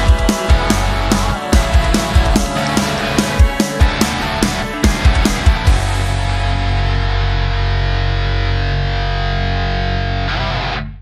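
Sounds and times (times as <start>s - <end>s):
bass: 0.0s - 11.0s
distorted electric guitar chord: 0.0s - 11.0s
heavy rock song: 0.0s - 11.0s.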